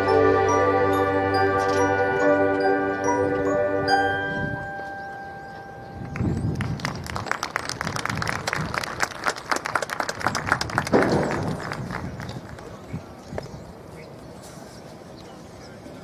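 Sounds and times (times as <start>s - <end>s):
mallet percussion tones: 0.0s - 6.3s.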